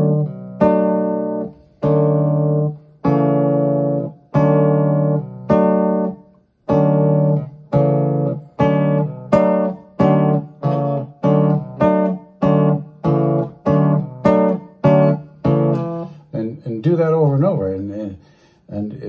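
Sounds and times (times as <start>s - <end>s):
nylon-string guitar chords ringing: 0.0s - 19.0s.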